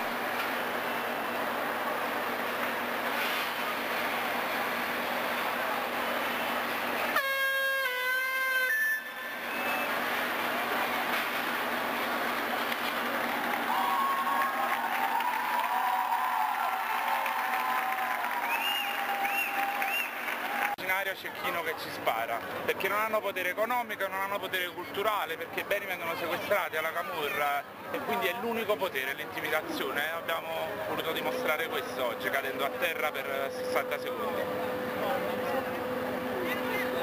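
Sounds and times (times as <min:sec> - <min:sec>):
horn blast: 0:07.1 - 0:09.8
crowd noise: 0:09.0 - 0:37.0.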